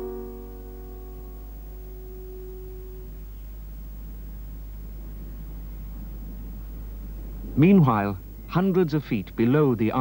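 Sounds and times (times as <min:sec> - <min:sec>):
piano chord: 0:00.0 - 0:03.2
mains hum: 0:00.0 - 0:10.0
tape hiss: 0:00.0 - 0:10.0.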